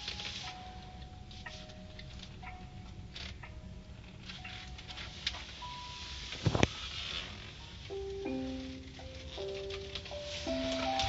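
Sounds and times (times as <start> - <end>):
sparse music notes: 7.6 - 11.0.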